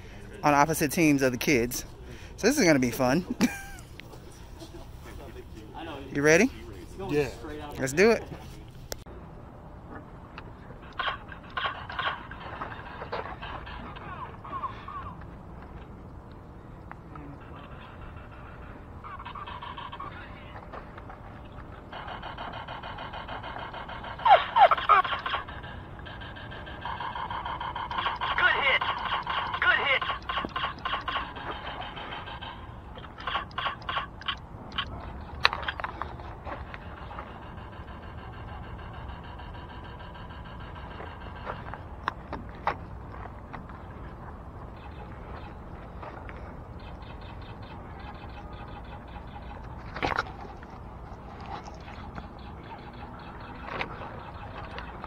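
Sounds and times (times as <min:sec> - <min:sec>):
outdoor background: 0:00.0 - 0:55.0
players calling out: 0:16.9 - 0:41.9.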